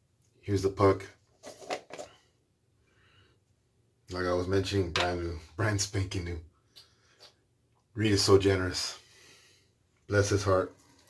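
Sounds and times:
plastic tub scraping and knocking: 0:01.4 - 0:02.1.

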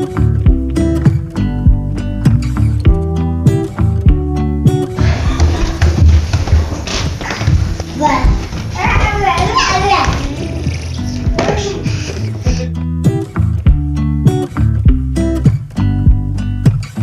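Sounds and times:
acoustic guitar music: 0:00.0 - 0:17.0
toddler babbling and squealing: 0:08.0 - 0:12.7.

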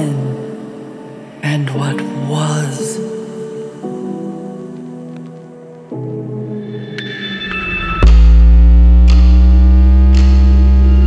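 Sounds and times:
sustained synthesizer bass note: 0:07.7 - 0:11.0.

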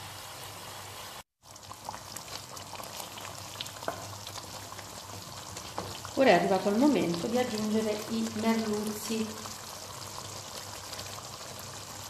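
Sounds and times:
soup bubbling in a pot: 0:00.2 - 0:12.0.

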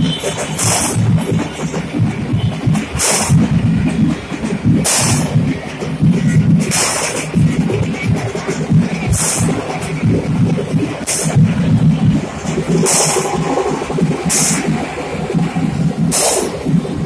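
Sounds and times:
loud music with heavy bass beat: 0:00.1 - 0:17.0.

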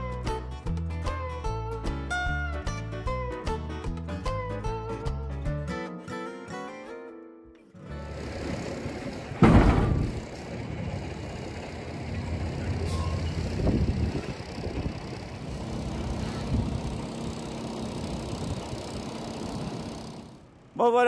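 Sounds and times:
guitar music: 0:00.0 - 0:08.3
truck diesel engine running: 0:07.8 - 0:20.7.

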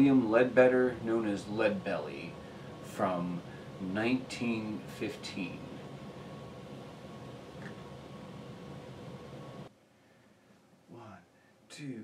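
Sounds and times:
faint hum: 0:00.0 - 0:12.0
room hiss: 0:00.0 - 0:12.0.

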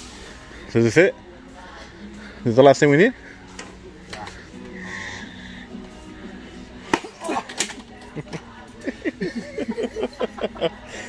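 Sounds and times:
background music in a store: 0:00.0 - 0:11.0
faint voices: 0:00.2 - 0:11.0.

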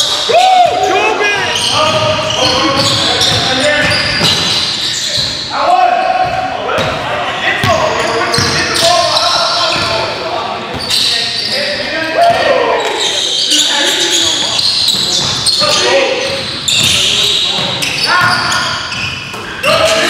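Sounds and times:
players calling out: 0:00.0 - 0:20.0
basketball bouncing on wooden floor: 0:01.6 - 0:04.6, 0:07.6 - 0:08.6, 0:16.4 - 0:19.1.

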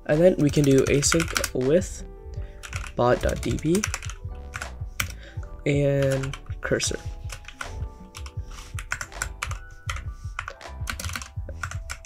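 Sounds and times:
soft background music: 0:00.0 - 0:12.0
typing on computer keyboard: 0:00.3 - 0:01.7, 0:02.6 - 0:05.2, 0:06.0 - 0:06.6, 0:07.2 - 0:12.0.

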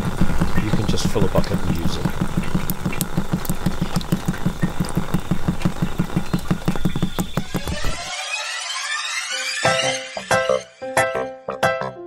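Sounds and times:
rising swoosh of music: 0:07.4 - 0:10.9.

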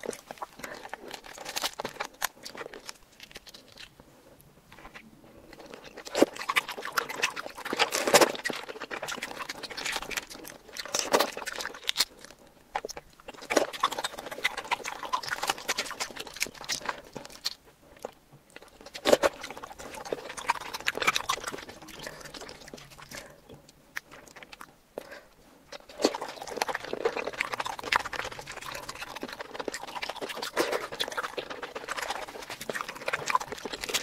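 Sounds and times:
seafood being chewed: 0:00.0 - 0:34.0.

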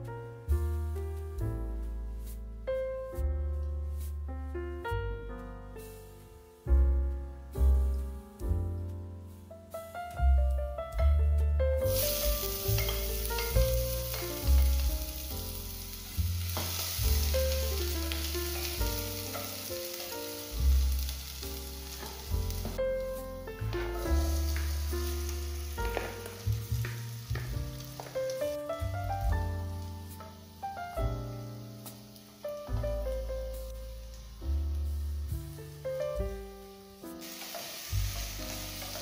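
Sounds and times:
background music: 0:00.0 - 0:39.0
onion sizzling in oil: 0:11.8 - 0:39.0.

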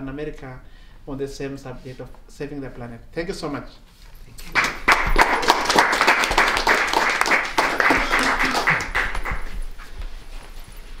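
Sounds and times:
small group applauding: 0:04.4 - 0:09.8.

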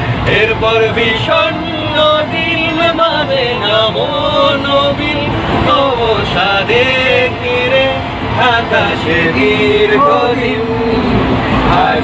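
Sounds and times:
train carriage running noise: 0:00.0 - 0:12.0
men singing together: 0:00.1 - 0:12.0.

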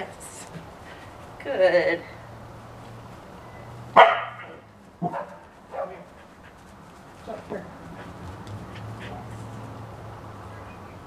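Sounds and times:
dog barking: 0:04.0 - 0:06.1.

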